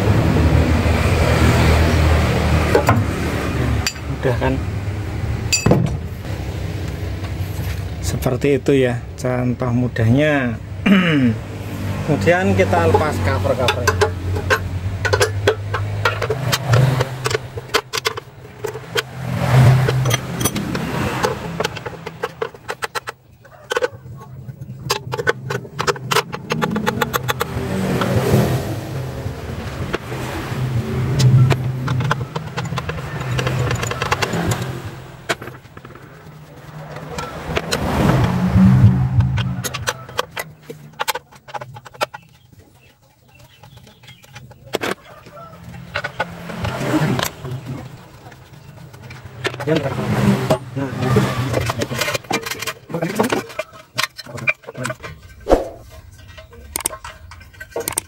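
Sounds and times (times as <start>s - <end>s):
passing vehicles hum: 0.0s - 42.4s, 43.4s - 52.9s, 55.2s - 58.0s.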